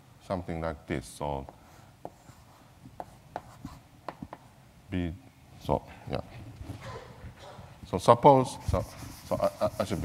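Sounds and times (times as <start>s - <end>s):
chalk tapping on blackboard: 1.4s - 4.5s, 8.6s - 10.0s.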